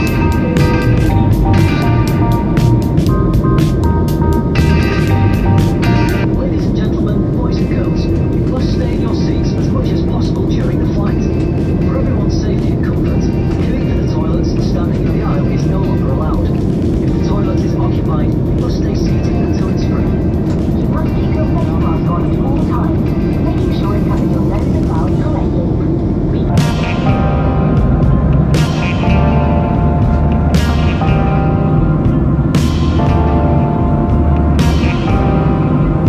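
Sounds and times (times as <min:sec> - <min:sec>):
airliner cabin engine and airflow noise: 0:00.0 - 0:36.0
indistinct voices: 0:00.0 - 0:36.0.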